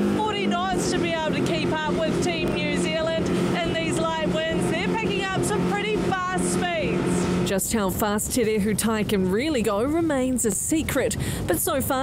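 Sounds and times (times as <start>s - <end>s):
rushing air and water: 0.0s - 9.6s
motorboat engine running fast: 0.0s - 12.0s
woman speaking: 0.2s - 12.0s.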